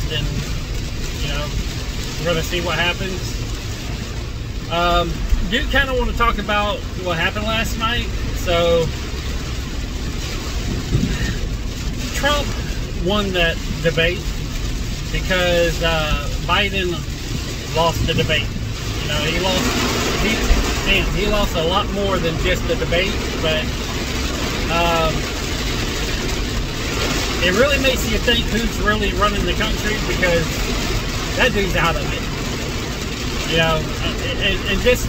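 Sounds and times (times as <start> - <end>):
heavy rain on car roof: 0.0 - 35.0
vehicle road and engine rumble: 0.0 - 35.0.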